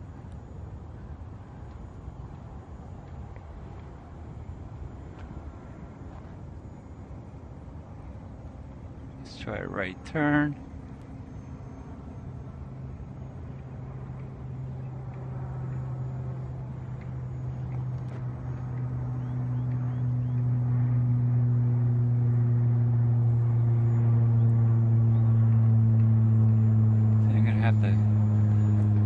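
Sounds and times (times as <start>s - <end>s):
model plane motor droning: 0.0s - 29.0s.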